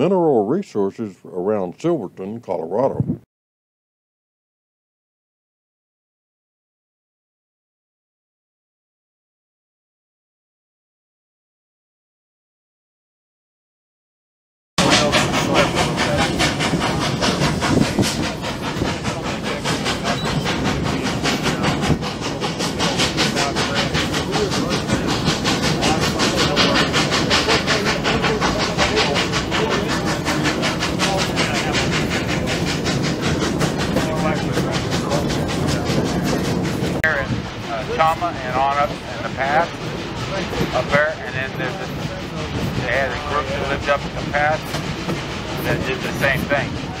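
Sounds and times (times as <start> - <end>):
steam train running: 0.0 - 2.8, 14.8 - 47.0.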